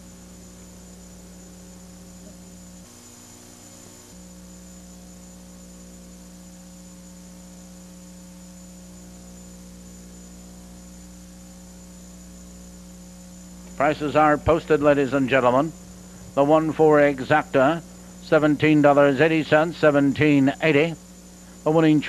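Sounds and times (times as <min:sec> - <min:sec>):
electrical mains hum: 0:00.0 - 0:22.0
faint hiss: 0:12.8 - 0:22.0.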